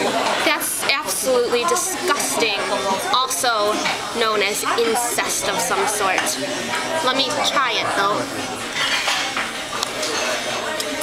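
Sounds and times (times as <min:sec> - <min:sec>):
faint chatter: 0:00.0 - 0:11.0
dishes and cutlery clattering: 0:07.8 - 0:11.0.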